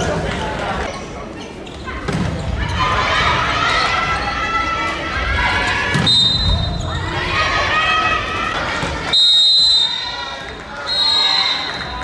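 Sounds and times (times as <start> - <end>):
referee's whistle blasts: 6.0 - 6.9, 9.1 - 10.2, 10.8 - 12.0.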